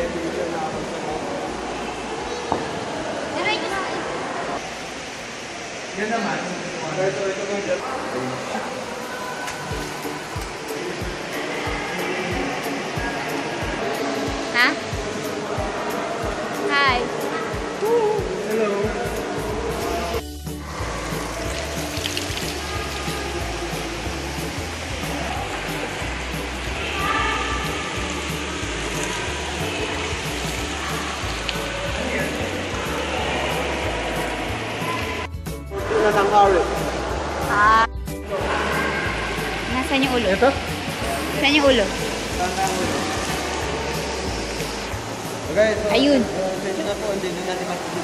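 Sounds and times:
flowing water: 0:00.0 - 0:48.0
indistinct voices: 0:07.8 - 0:48.0
background music with bass line: 0:09.7 - 0:47.4.

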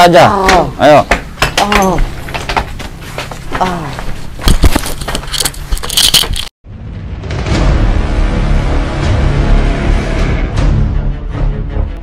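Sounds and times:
jingling and clattering: 0:04.6 - 0:06.5
music: 0:06.7 - 0:12.0.

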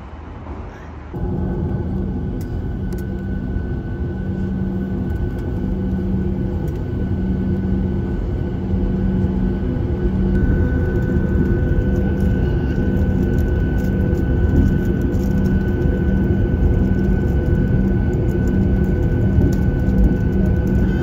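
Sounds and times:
jet engines humming: 0:00.0 - 0:21.0.

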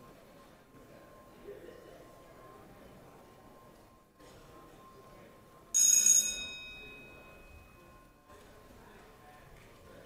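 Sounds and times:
low murmur of large chamber: 0:00.0 - 0:10.0
bell-like chime: 0:05.8 - 0:08.2.

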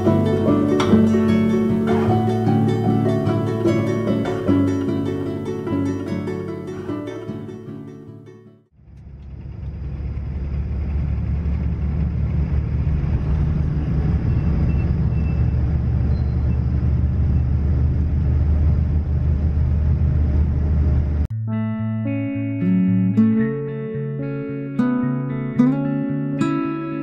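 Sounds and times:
plucked guitar music: 0:00.0 - 0:08.7, 0:21.3 - 0:27.0
car road and engine rumble: 0:08.8 - 0:21.3.

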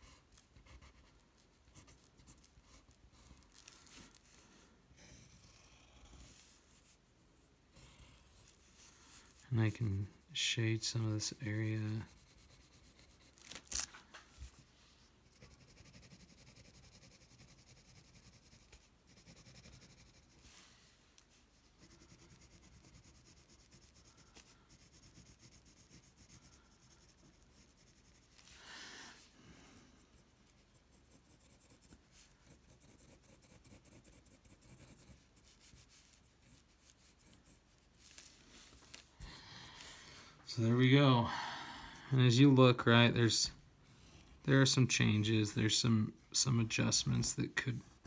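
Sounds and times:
pencil scratching on paper: 0:00.0 - 0:04.4, 0:05.0 - 0:06.9, 0:11.4 - 0:13.8, 0:14.4 - 0:20.6, 0:21.5 - 0:28.6, 0:30.0 - 0:37.9.

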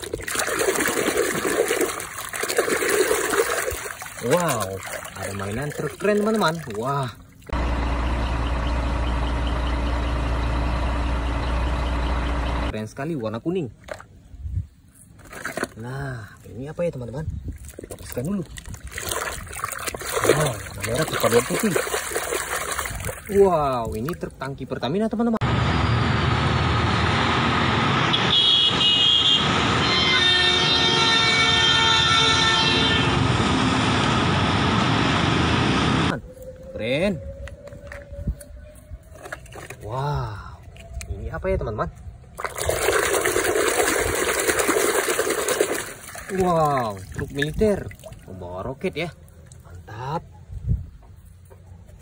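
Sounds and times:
truck engine humming: 0:07.2 - 0:12.7, 0:25.4 - 0:36.1
vehicle horn blasts: 0:28.1 - 0:33.4.

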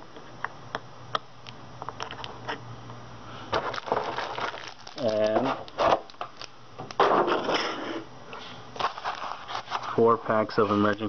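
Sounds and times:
packaging crinkling: 0:03.5 - 0:07.5, 0:08.8 - 0:10.0.

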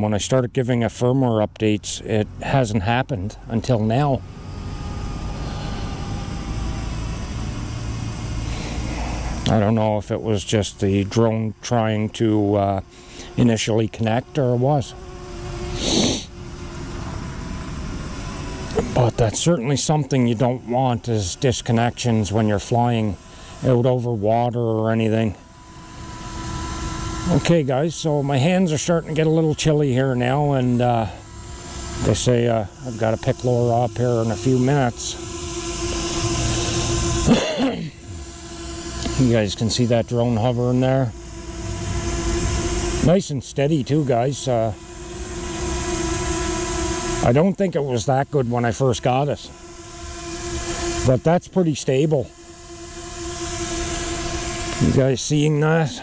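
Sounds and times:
low outdoor rumble: 0:00.0 - 0:37.3
faint steady hum: 0:00.0 - 0:56.0
short hiss: 0:15.7 - 0:16.3.

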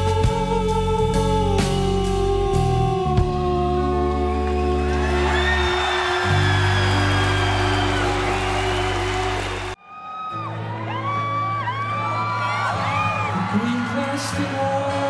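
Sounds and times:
live rock band playing: 0:00.0 - 0:03.7
person singing: 0:00.0 - 0:09.8, 0:12.3 - 0:15.0
crowd whooping and whistling: 0:04.3 - 0:15.0.

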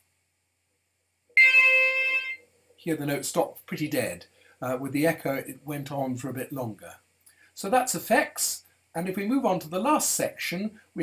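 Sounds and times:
synthesized note: 0:01.4 - 0:02.4.

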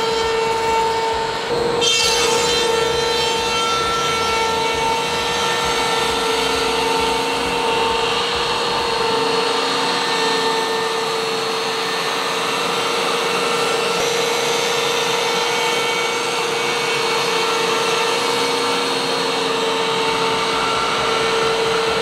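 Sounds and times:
dust collector air rush: 0:00.0 - 0:22.0
slab flattener cutter humming: 0:00.0 - 0:22.0.

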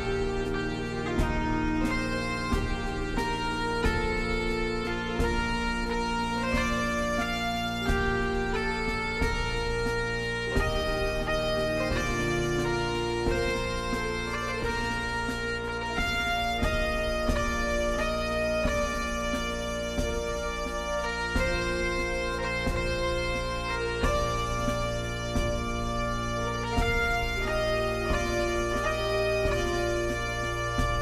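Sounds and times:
bagpipe melody with drones: 0:00.0 - 0:31.0
percussive drum strokes: 0:00.0 - 0:31.0.

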